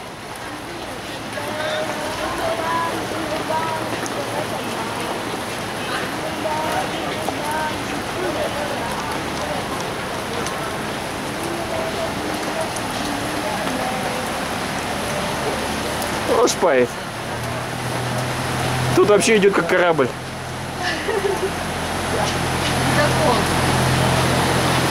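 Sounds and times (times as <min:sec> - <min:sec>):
rain falling on flooded street: 0:00.0 - 0:24.9.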